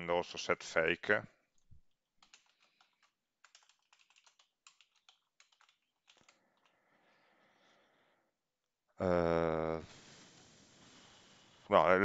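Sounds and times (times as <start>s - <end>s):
typing on computer keyboard: 2.1s - 6.7s.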